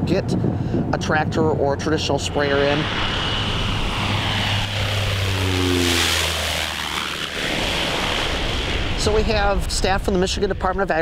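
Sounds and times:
propeller airplane passing low: 0.6s - 11.0s.

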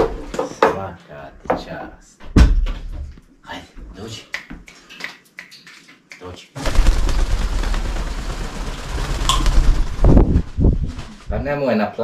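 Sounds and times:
parrot wing beats rushing air: 6.6s - 11.6s.

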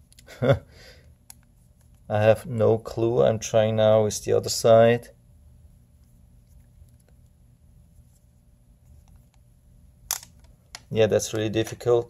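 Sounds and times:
sharp plastic snap: 10.1s - 10.9s.

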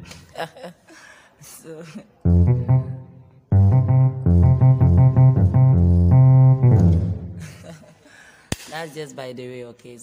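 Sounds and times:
reggae bass line on keyboard: 2.3s - 7.4s.

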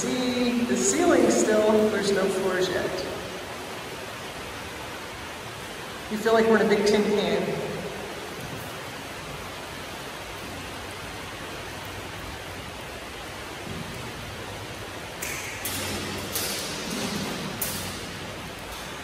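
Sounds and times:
rain on a metal roof: 0.0s - 19.0s.

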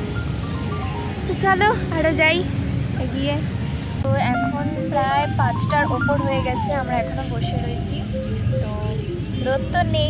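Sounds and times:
woman speaking: 4.1s - 10.0s.

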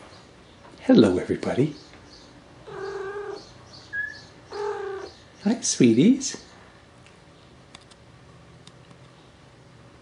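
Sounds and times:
high chirp: 2.1s - 5.5s
cat meowing: 2.6s - 5.2s.

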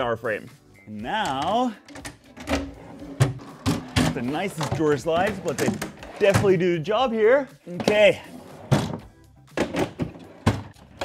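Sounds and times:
drawer sliding out: 1.9s - 6.6s.

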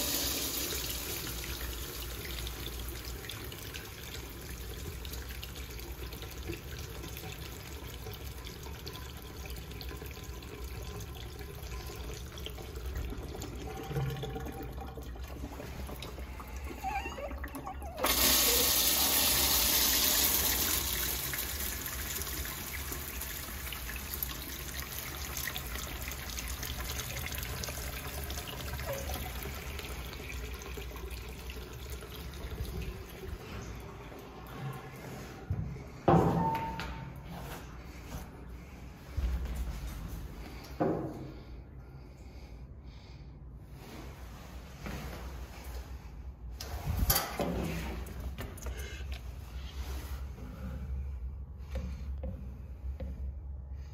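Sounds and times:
water running down china: 0.0s - 34.6s
urinal flushing: 0.0s - 41.5s, 42.2s - 53.9s.

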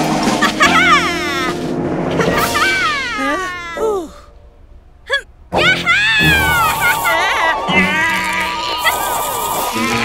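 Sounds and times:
cartoon background music: 0.0s - 4.0s, 5.5s - 8.5s
strained cartoon vocal effort: 6.2s - 10.0s.

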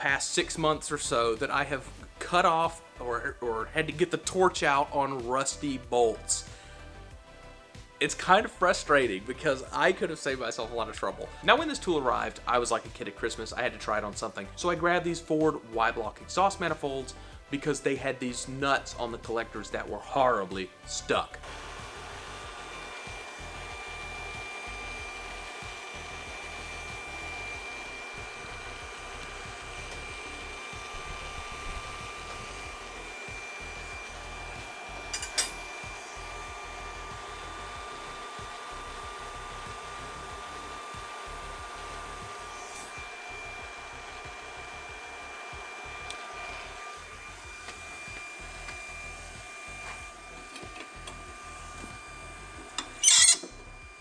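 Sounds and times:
thin high whine: 21.3s - 54.0s
cooling fan whirring: 21.4s - 54.0s.

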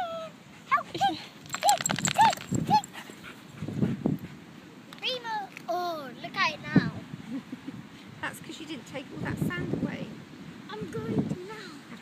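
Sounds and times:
dog yelping: 1.5s - 3.0s.

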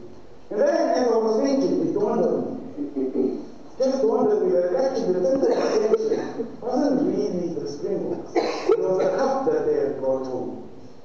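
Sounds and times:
man speaking into a microphone: 0.5s - 10.7s
man coughing: 5.3s - 6.6s, 8.3s - 9.4s.

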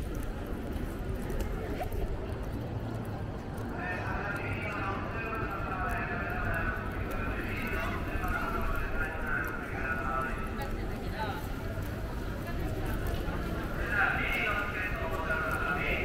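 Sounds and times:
city street hum: 0.0s - 16.0s
people talking: 1.1s - 16.0s.

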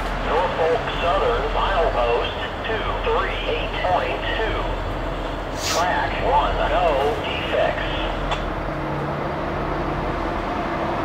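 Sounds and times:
locomotive engine drone: 0.0s - 11.0s
track and wheel noise: 0.0s - 11.0s.

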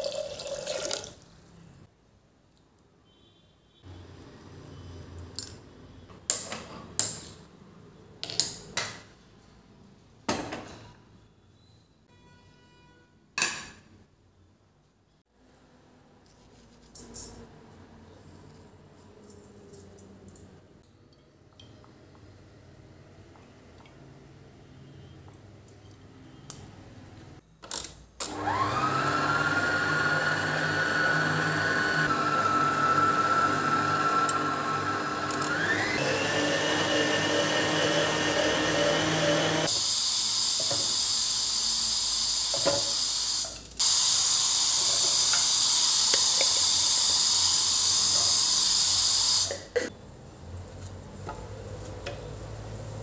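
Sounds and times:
stand mixer motor whining: 28.3s - 39.8s.

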